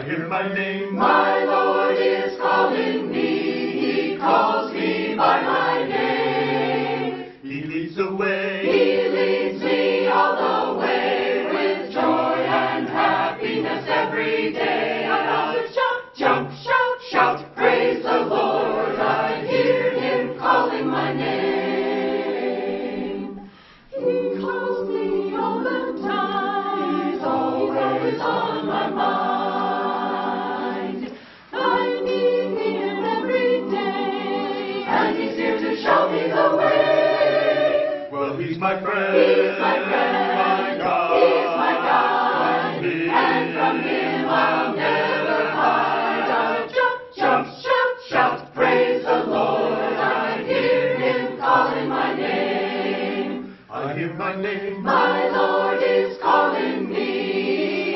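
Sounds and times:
choir singing gospel anthem: 0.0s - 57.9s.

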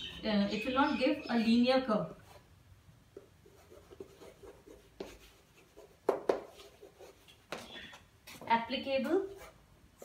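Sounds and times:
chalk tapping on board: 3.2s - 7.6s
chalk scratching on chalkboard: 3.4s - 7.7s, 9.2s - 9.6s.

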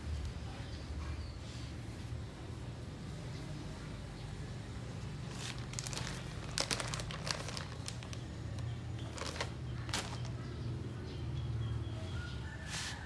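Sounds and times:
plastic bag crinkling: 5.3s - 10.4s.

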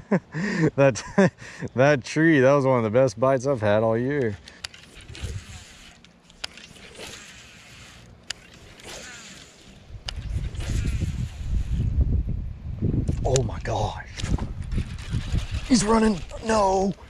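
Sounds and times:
fishing reel clicks: 4.2s - 11.8s.

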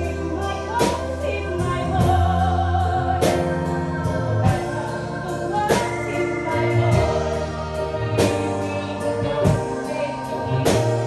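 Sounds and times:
bass: 0.0s - 11.0s
woman singing a ballad: 0.0s - 11.0s.

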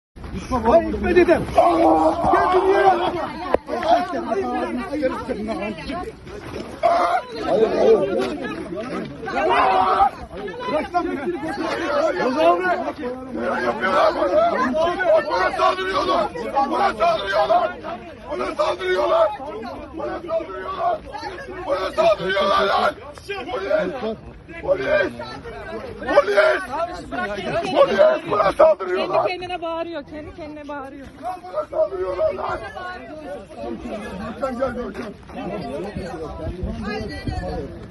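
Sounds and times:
overlapping chatter of voices: 0.2s - 37.9s
people talking over one another: 0.2s - 37.9s.

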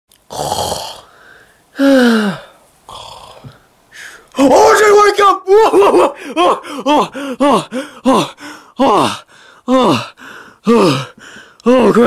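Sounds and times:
person mock snoring: 0.3s - 1.2s, 1.8s - 3.6s.

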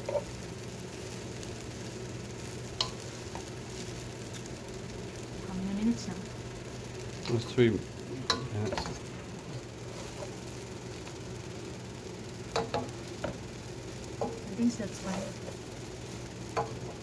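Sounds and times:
frying sizzle: 0.0s - 17.0s
noodles stirred in a pot: 0.0s - 17.0s.

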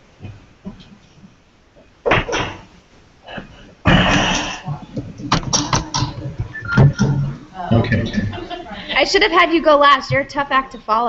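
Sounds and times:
knocks on laptop: 5.2s - 6.1s.

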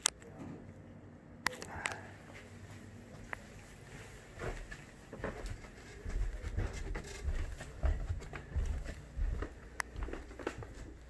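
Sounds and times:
footsteps going down stairs: 2.3s - 11.0s.

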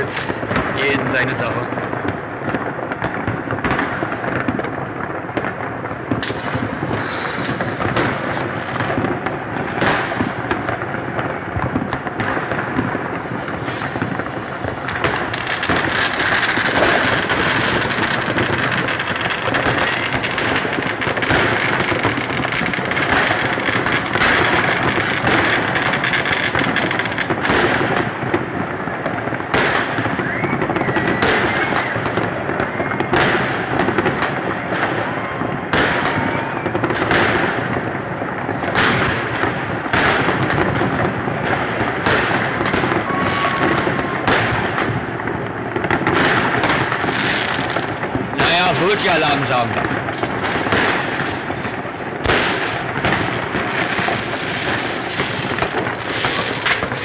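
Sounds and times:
whistling rockets: 0.0s - 4.6s, 5.3s - 28.2s, 28.8s - 37.9s, 38.5s - 57.0s
fireworks banging and crackling: 0.0s - 57.0s.

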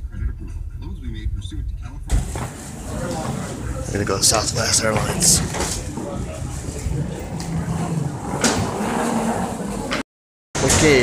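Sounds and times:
low rumble: 0.0s - 9.6s.

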